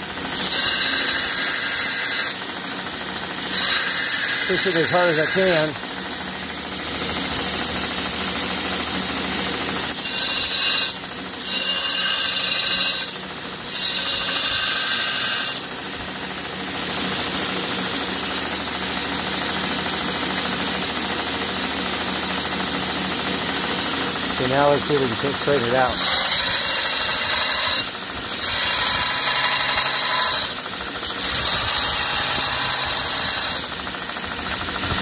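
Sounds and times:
angle grinder grinding steel: 0.0s - 2.5s, 3.4s - 8.6s, 9.9s - 15.8s, 22.0s - 33.7s.

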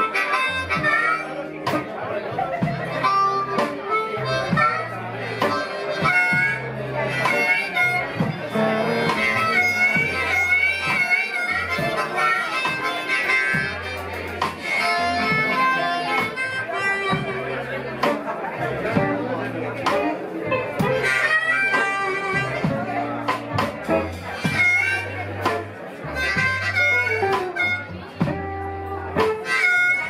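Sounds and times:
blues harmonica solo: 0.0s - 30.0s
drums: 0.0s - 30.0s
electric bass: 0.0s - 30.0s
electric guitar: 7.2s - 13.7s, 26.2s - 30.0s.

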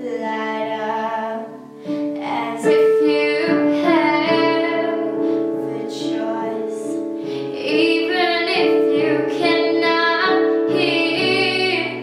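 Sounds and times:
girl singing: 0.0s - 12.0s.

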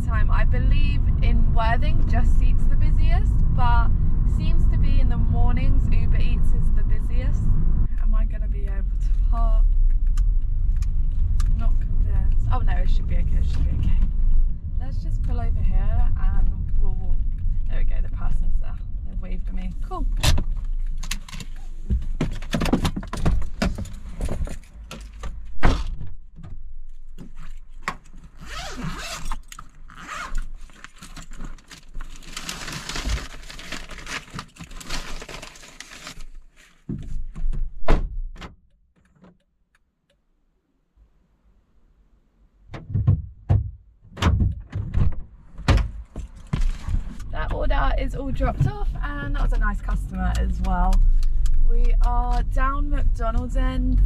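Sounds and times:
paper bag rustling: 30.4s - 36.8s
car doors thunking: 42.7s - 46.4s.

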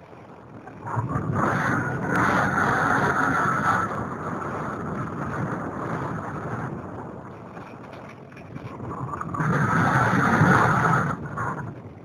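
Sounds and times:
wind rushing over microphone: 0.0s - 12.0s.

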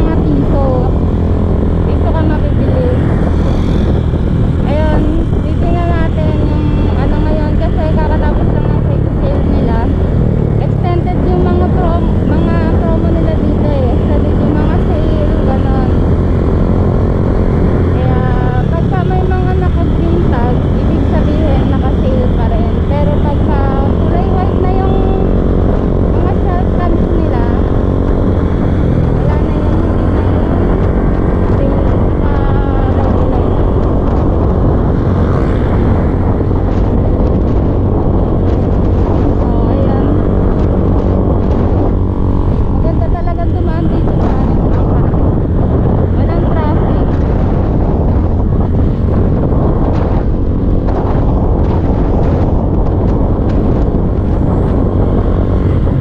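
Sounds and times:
motor scooter engine hum: 0.0s - 56.0s
road noise: 0.0s - 56.0s
wind noise on microphone: 0.0s - 56.0s.

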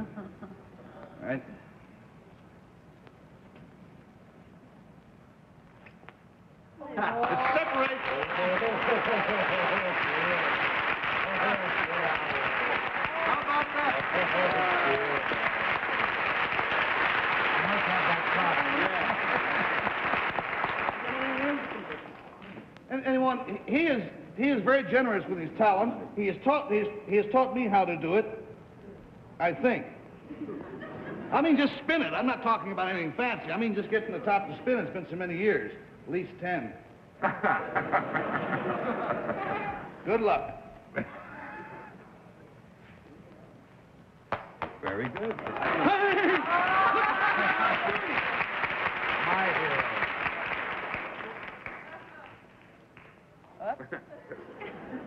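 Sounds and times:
studio audience applauding: 7.1s - 22.2s, 44.3s - 53.2s.

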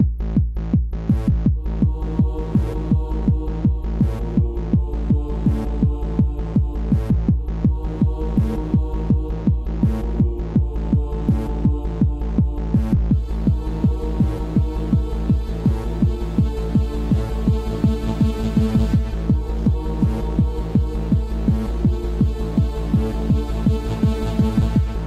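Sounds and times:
deep bass drone: 0.0s - 25.0s
techno kick drum: 0.0s - 25.0s
synth pad: 1.6s - 25.0s.

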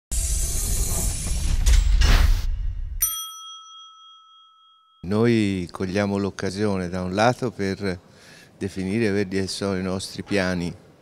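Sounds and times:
bright bell-like ding: 3.0s - 5.1s.

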